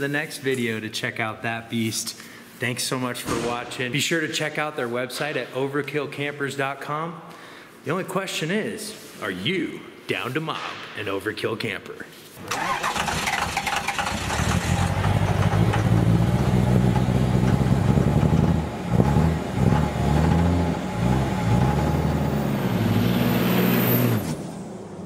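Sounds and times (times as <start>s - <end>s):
vehicle engine revving: 12.5s - 25.0s.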